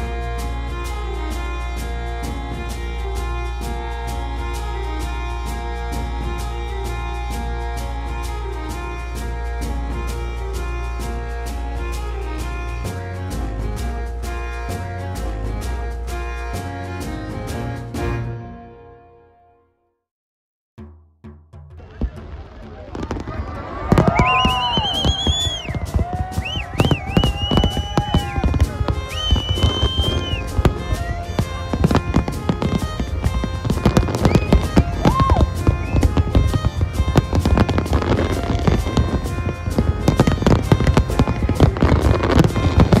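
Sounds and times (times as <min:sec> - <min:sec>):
music playing: 0:00.0 - 0:19.3, 0:21.8 - 0:43.0
fireworks bangs and crackles: 0:21.8 - 0:43.0
whistling fireworks: 0:22.0 - 0:43.0.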